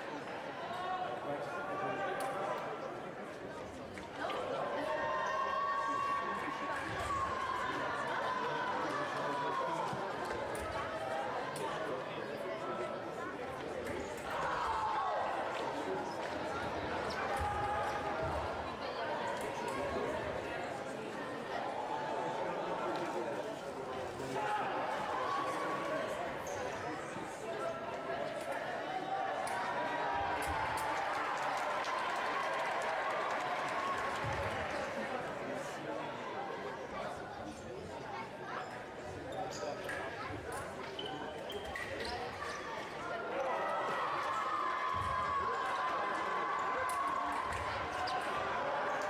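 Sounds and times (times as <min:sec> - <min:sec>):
voices chattering in a hall: 0:00.0 - 0:49.0.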